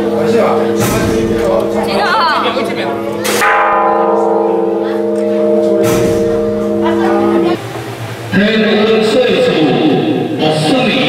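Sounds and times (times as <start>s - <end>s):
large temple bell ringing: 0.0s - 7.7s
crowd hum: 0.0s - 11.0s.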